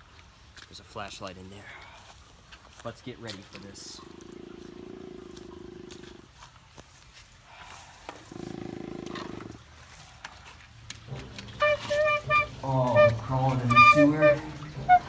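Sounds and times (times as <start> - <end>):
low muffled growling roar: 4.0 - 6.2, 8.2 - 9.6.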